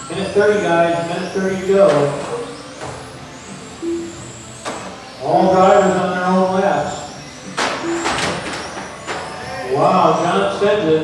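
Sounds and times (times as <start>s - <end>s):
rc car motor whine: 0.0s - 11.0s.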